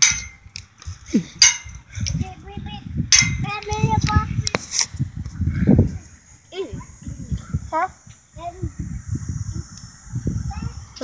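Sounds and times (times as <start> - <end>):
wind buffeting microphone: 0.0 - 11.0
child's voice: 2.1 - 4.5, 5.8 - 8.9, 10.4 - 11.0.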